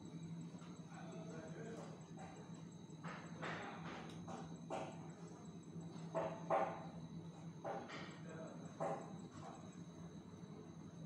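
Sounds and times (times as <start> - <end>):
electrical hum: 0.0 - 11.0
faint high whine: 0.0 - 11.0.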